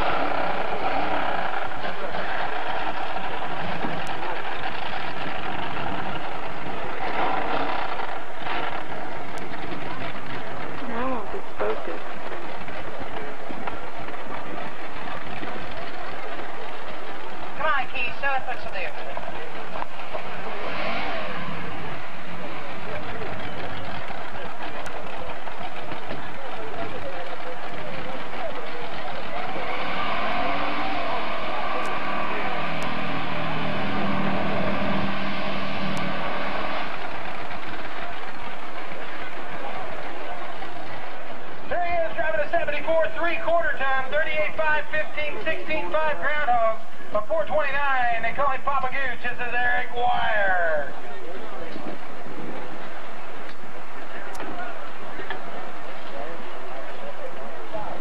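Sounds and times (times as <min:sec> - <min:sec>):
truck engine running hard: 0:00.0 - 0:58.0
voices: 0:08.2 - 0:58.0.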